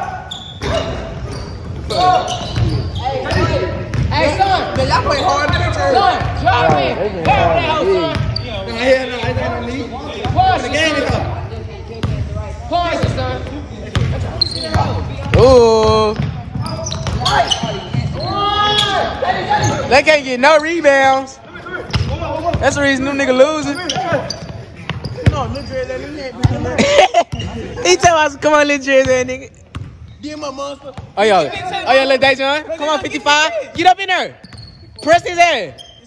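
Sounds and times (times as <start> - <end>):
basketball bouncing on wooden floor: 3.9 - 4.1
players shouting: 14.2 - 26.6.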